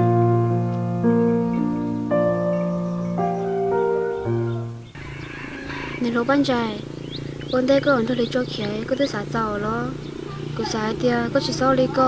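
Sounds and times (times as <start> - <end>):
low hum: 0.0 - 12.0
woman speaking: 6.0 - 6.8, 7.5 - 12.0.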